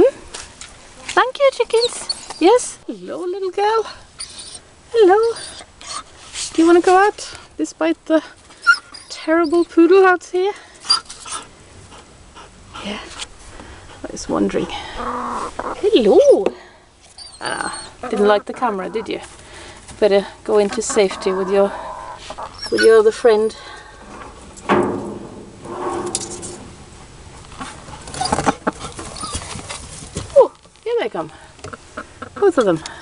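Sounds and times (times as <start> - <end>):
hen clucking: 14.6 - 16.2, 17.2 - 19.3, 20.5 - 23.6, 31.6 - 32.8.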